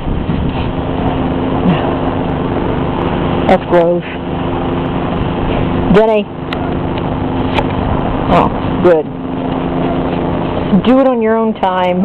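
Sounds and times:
constant background noise: 0:00.0 - 0:12.0
steady mechanical hum: 0:00.0 - 0:12.0.

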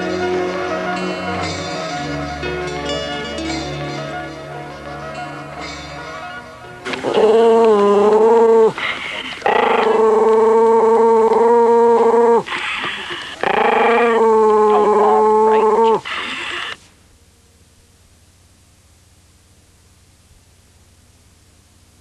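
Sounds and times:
dog howling: 0:07.0 - 0:08.8, 0:09.4 - 0:12.6, 0:13.4 - 0:16.1.

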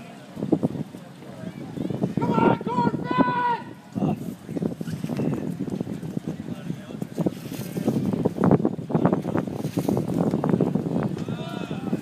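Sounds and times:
crowd talking: 0:00.0 - 0:12.0
wind buffeting microphone: 0:00.0 - 0:12.0.

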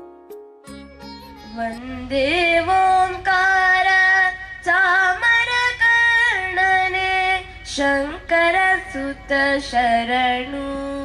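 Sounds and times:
girl singing into microphone: 0:01.4 - 0:11.0.

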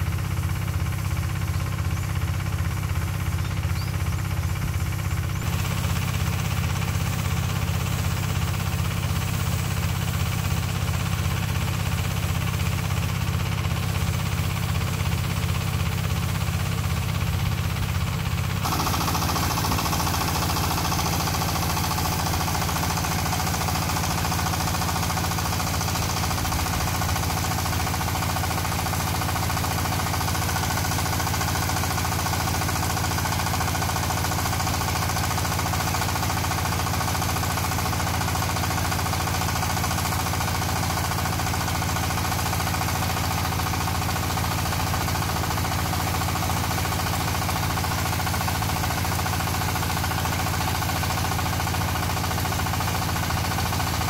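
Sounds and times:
diesel engine chugging: 0:00.0 - 0:54.0.

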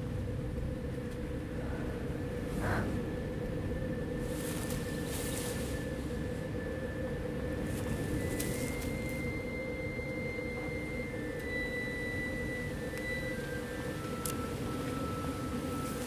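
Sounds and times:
steady low hum: 0:00.0 - 0:16.0
sustained high tones: 0:05.6 - 0:16.0.

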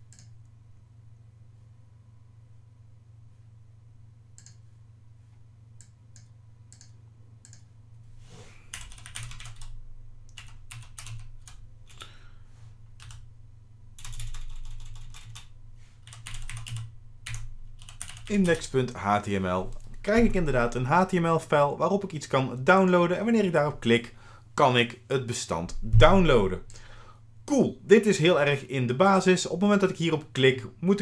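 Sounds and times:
computer keyboard typing: 0:08.7 - 0:12.0, 0:13.0 - 0:13.2, 0:14.0 - 0:18.7.

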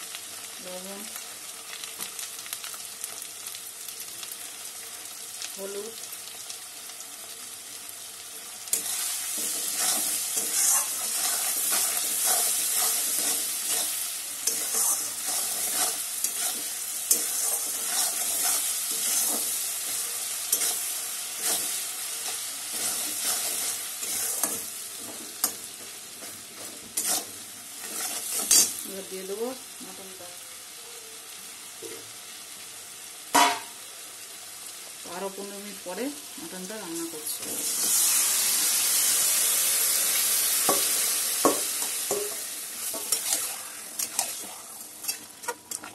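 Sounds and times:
onions frying in hot oil: 0:00.0 - 0:45.9
spatula stirring in pan: 0:08.7 - 0:28.8, 0:40.6 - 0:45.9.

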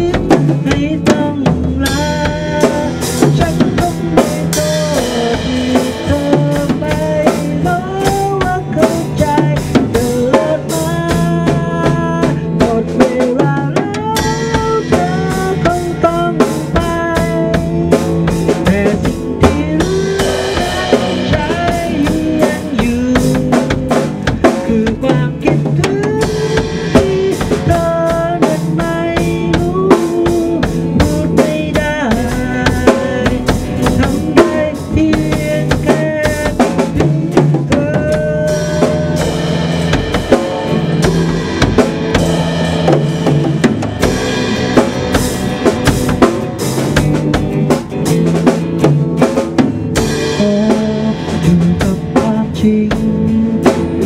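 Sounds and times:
drum kit beat: 0:00.0 - 0:54.0
electric guitar bending notes: 0:00.0 - 0:54.0.

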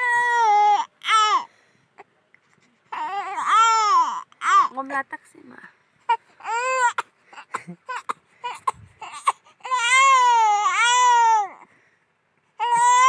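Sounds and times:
baby crying: 0:00.0 - 0:01.5, 0:02.9 - 0:04.7, 0:06.1 - 0:11.6, 0:12.6 - 0:13.0.

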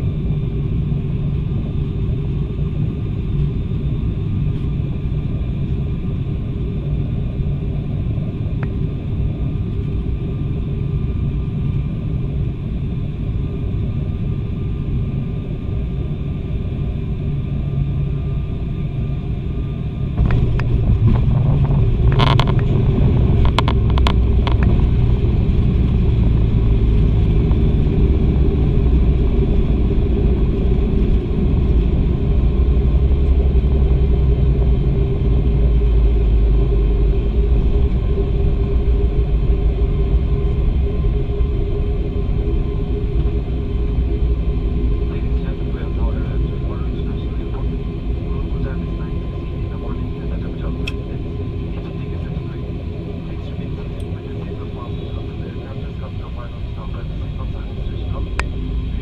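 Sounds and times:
airplane engine and propeller drone: 0:00.0 - 0:59.0
plane touching down and rolling: 0:20.2 - 0:28.0.

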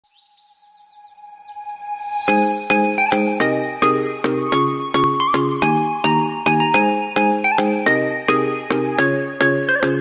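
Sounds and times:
bird chirps: 0:00.0 - 0:04.7.

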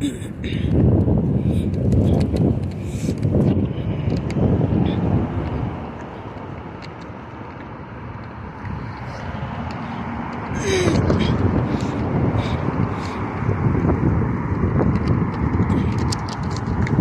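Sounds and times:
wind rumbling on phone microphone: 0:00.0 - 0:17.0.

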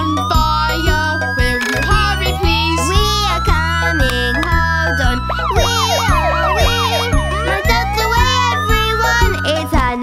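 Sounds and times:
cartoon siren wail: 0:00.0 - 0:09.5
upbeat children's music: 0:00.0 - 0:10.0.

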